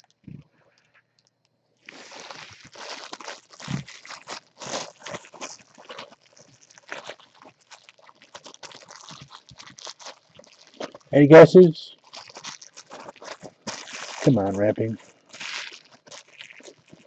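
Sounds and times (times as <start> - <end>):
plastic wrap crinkling: 0.0 - 11.1, 11.9 - 17.0.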